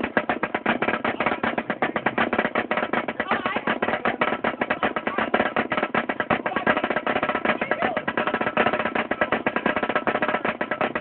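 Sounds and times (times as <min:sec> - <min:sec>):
marching snare drum: 0:00.0 - 0:11.0.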